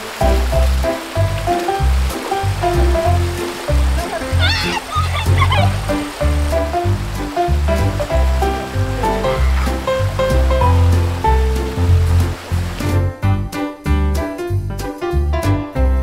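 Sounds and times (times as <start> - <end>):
mountain stream rushing: 0.0 - 13.1
background music with bass: 0.0 - 16.0.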